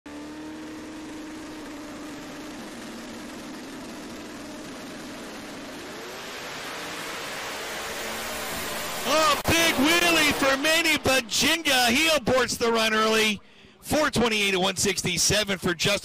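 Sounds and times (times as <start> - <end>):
drag racing car engines: 0.1 - 16.0.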